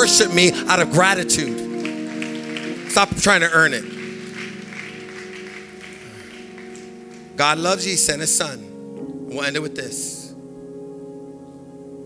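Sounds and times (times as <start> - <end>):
soft worship band chord: 0.0 - 12.0.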